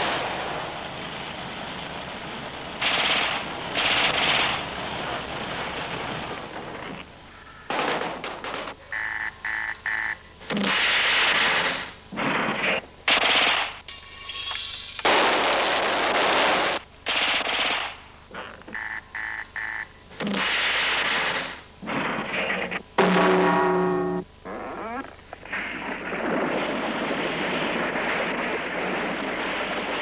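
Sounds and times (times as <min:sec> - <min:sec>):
noisy blasts: 0:00.0 - 0:13.9, 0:15.0 - 0:30.0
automatic weapon fire: 0:02.8 - 0:05.1, 0:07.7 - 0:08.8, 0:10.5 - 0:13.8, 0:15.0 - 0:18.1
pitched tone: 0:23.0 - 0:25.1.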